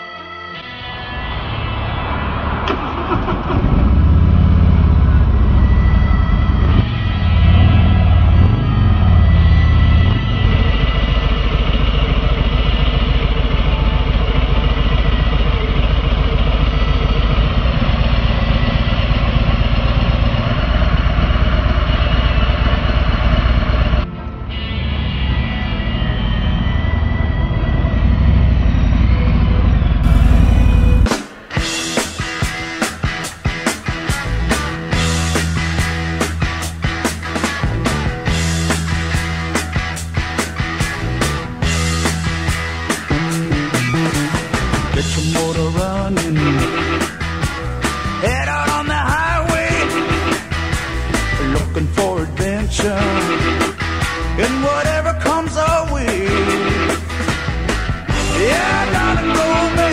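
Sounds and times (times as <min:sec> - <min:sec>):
motorcycle engine revving: 0:01.0 - 0:59.9
rock music with drums: 0:04.9 - 0:17.3, 0:30.0 - 0:59.9.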